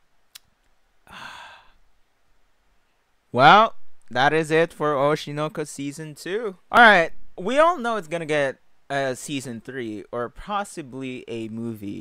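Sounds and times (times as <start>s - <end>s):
man sighing: 1.0s - 1.8s.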